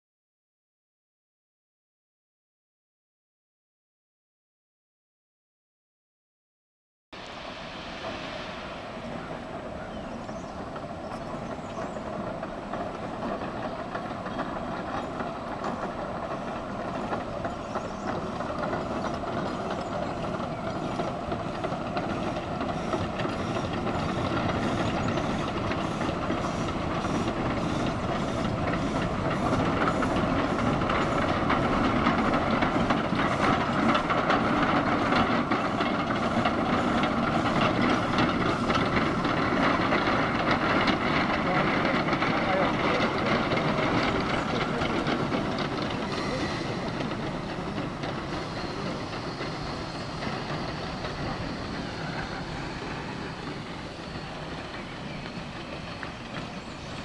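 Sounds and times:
steam hiss: 0:07.2 - 0:12.4, 0:15.4 - 0:57.0
steam locomotive exhaust chuffing: 0:07.2 - 0:57.0.

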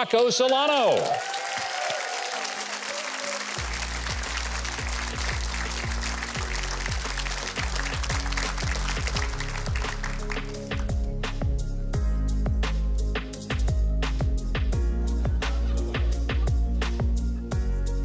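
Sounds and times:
audience applauding: 0:00.0 - 0:10.9
walk-on music: 0:03.4 - 0:18.0
heavy bass beat: 0:03.6 - 0:18.0.

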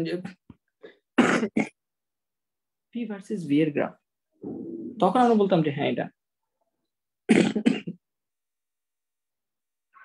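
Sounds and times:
man clearing his throat: 0:07.3 - 0:08.0.

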